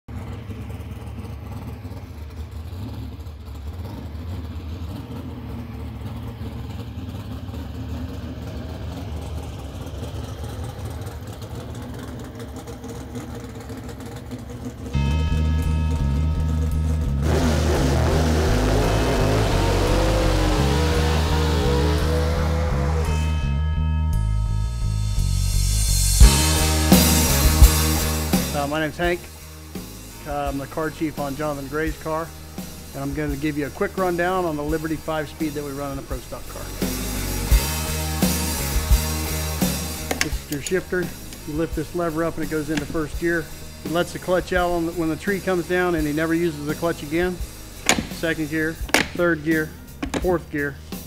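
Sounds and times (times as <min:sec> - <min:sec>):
drag car engine revving: 0:00.0 - 0:23.7, 0:25.4 - 0:51.0
low engine rumble: 0:00.1 - 0:51.0
music with steady beat: 0:15.0 - 0:33.0, 0:36.6 - 0:44.3, 0:45.4 - 0:51.0.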